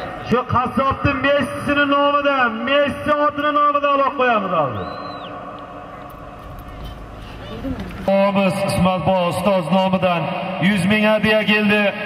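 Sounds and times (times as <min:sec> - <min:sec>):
faint distant voices: 0:05.6 - 0:08.1.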